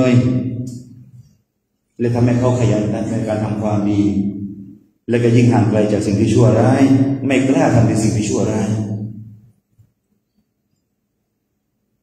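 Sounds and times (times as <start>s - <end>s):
man lecturing: 0.0s - 0.9s, 2.0s - 9.2s.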